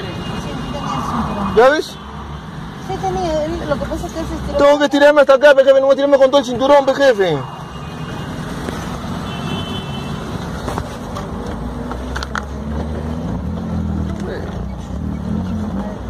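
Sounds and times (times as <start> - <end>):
traffic noise: 0.0 - 16.0.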